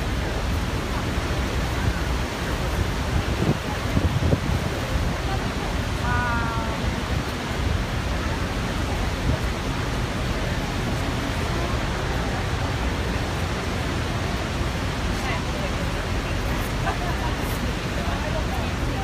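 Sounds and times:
passengers' voices: 0.0s - 19.0s
waterfall roaring: 0.0s - 19.0s.

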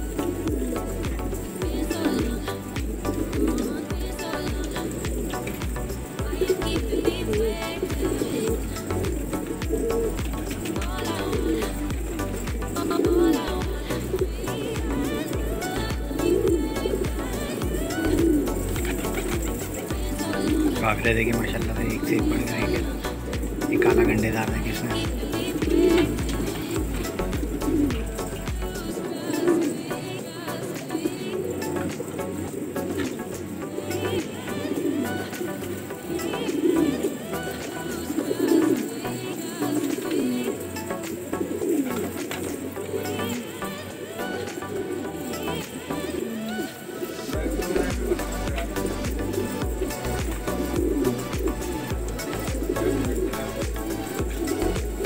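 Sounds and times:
background music: 0.0s - 55.0s
pigeons cooing: 0.0s - 55.0s.

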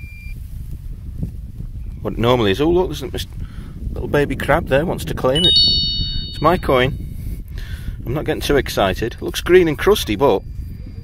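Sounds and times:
metal detector high tone: 5.4s - 7.0s.

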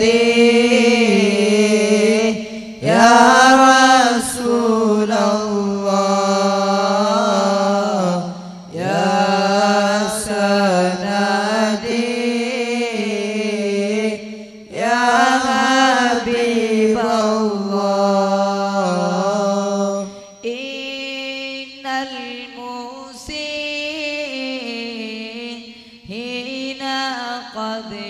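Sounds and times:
person chanting: 0.0s - 28.0s.

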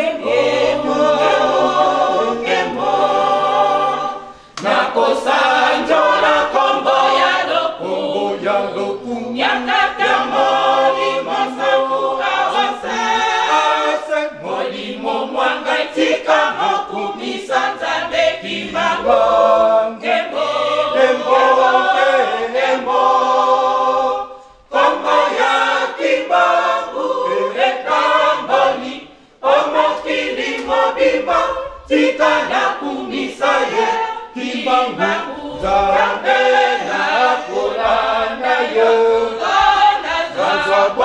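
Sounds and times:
church choir singing a hymn: 0.0s - 41.0s.

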